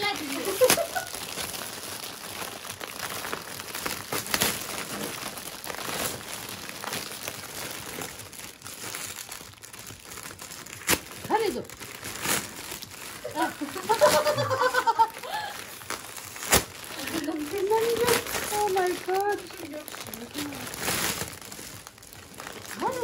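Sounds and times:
foil wrapping paper crinkling: 0:00.0 - 0:23.0.

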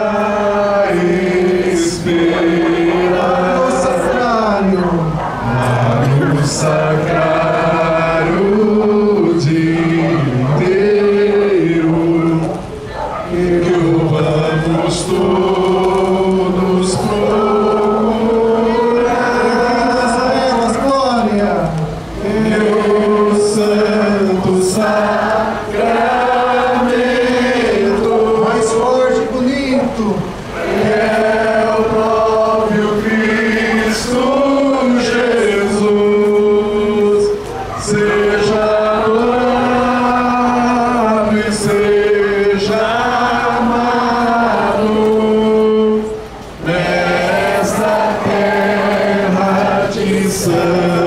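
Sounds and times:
hymn sung in unison: 0:00.0 - 0:51.0.

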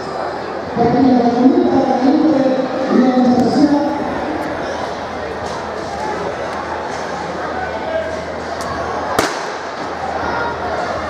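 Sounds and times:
murmur of voices: 0:00.0 - 0:11.0
starter's pistol crack: 0:09.2 - 0:09.6.

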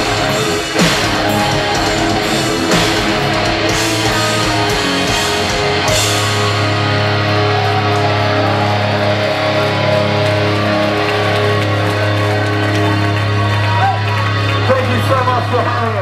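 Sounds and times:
metal band playing distorted guitars: 0:00.0 - 0:16.0.

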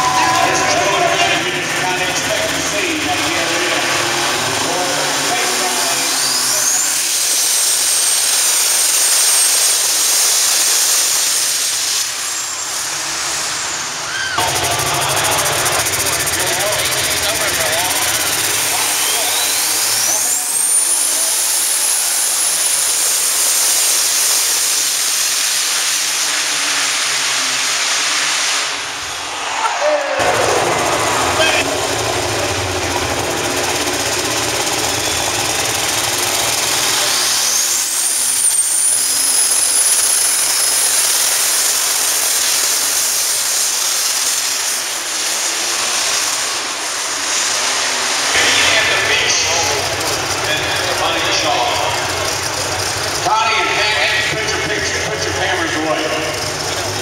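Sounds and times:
turbo whine screaming: 0:00.0 - 0:27.9, 0:28.6 - 0:57.0
diesel tractor engine: 0:00.0 - 0:57.0.

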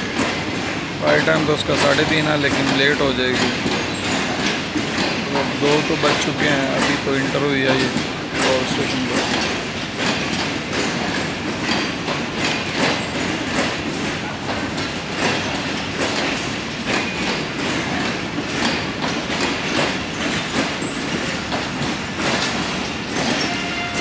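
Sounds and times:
steady train rumble: 0:00.0 - 0:24.0
train wheels clacking over rail joints: 0:00.0 - 0:24.0.

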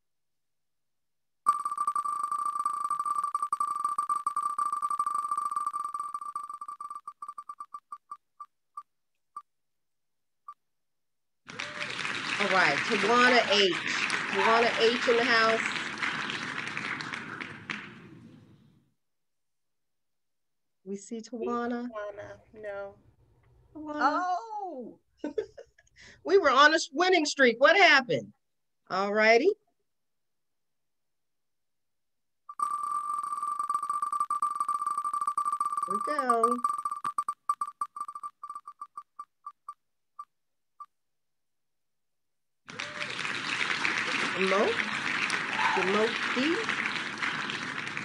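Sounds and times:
prize wheel electronic ticks: 0:01.5 - 0:08.2, 0:32.5 - 0:39.8
recorded applause: 0:11.5 - 0:18.6, 0:42.7 - 0:48.0.

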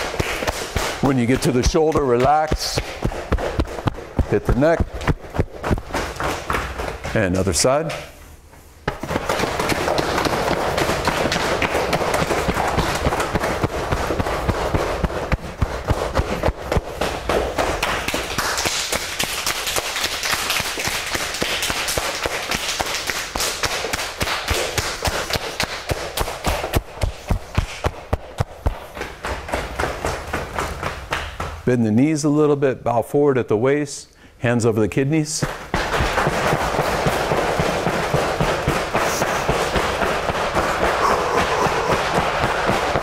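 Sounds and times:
cupped hands patting body: 0:00.0 - 0:08.0, 0:08.8 - 0:31.6, 0:35.4 - 0:43.0.

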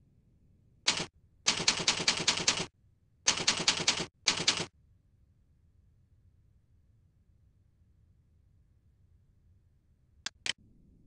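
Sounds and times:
keyboard keystroke clicks: 0:10.3 - 0:10.6.

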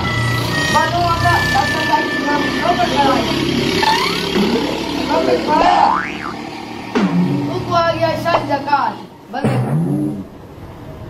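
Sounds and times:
indistinct voices talking: 0:00.0 - 0:10.2
vehicle engine humming: 0:00.0 - 0:11.0.

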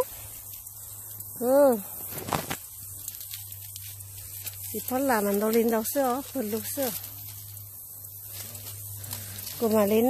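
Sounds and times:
leaves rustling: 0:00.0 - 0:10.0
light crackles of leaves: 0:00.0 - 0:10.0.

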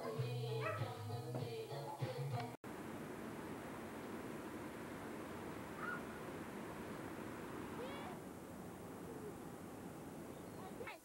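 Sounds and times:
outdoor woodland background: 0:02.7 - 0:11.0
short gliding call: 0:05.7 - 0:06.2.

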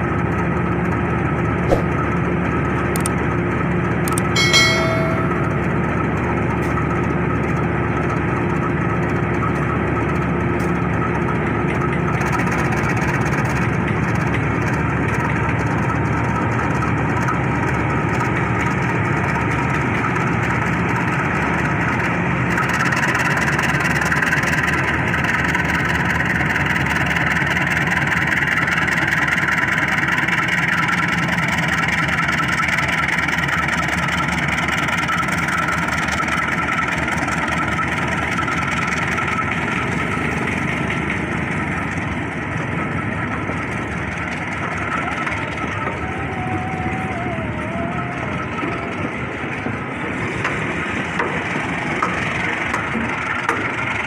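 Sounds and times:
locomotive engine running: 0:00.0 - 0:54.0.

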